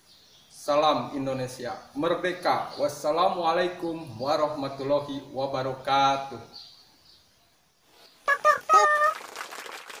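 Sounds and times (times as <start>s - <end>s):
high-pitched voice-like call: 8.3s - 9.2s.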